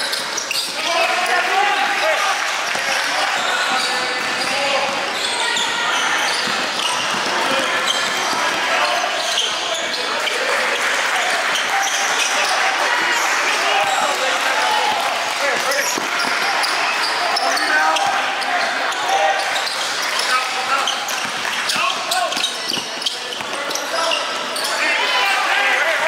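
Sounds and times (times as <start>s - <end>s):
basketball bouncing on court: 2.6s - 8.7s, 13.8s - 16.8s, 20.9s - 23.6s.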